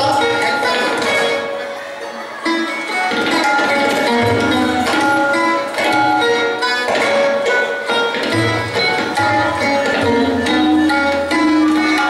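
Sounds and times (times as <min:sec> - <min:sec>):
sustained melodic accompaniment: 0:00.0 - 0:12.0
tabla playing: 0:00.0 - 0:12.0.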